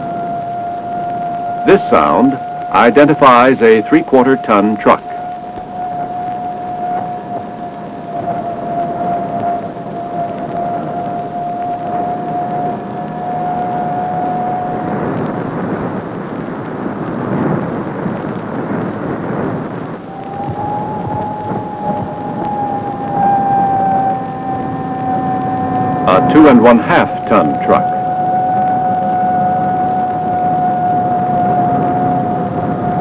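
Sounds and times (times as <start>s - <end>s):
radar doppler audio tone: 0.0s - 33.0s
rough rushing rumble: 0.0s - 33.0s.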